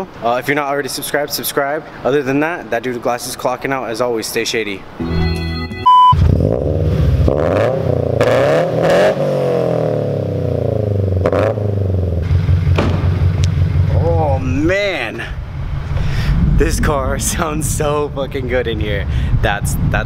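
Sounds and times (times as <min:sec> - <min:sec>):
brief beep: 0:05.0 - 0:06.2
car engine revving: 0:06.2 - 0:14.4.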